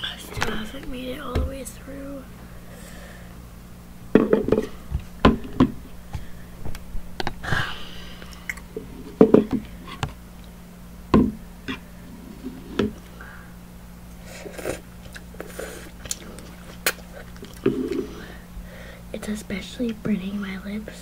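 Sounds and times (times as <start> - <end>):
steady low hum: 0.0 - 21.0
slurping noodles: 14.2 - 18.4.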